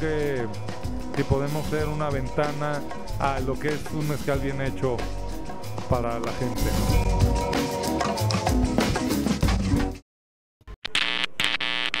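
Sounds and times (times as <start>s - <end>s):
buzzing electronic tones: 10.8s - 12.0s.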